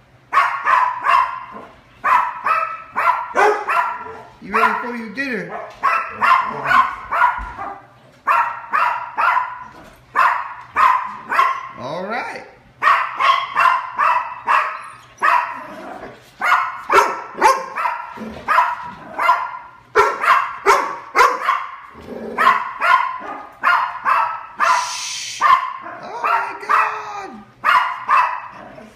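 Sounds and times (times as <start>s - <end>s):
dogs barking: 0.2s - 11.8s, 12.7s - 28.9s.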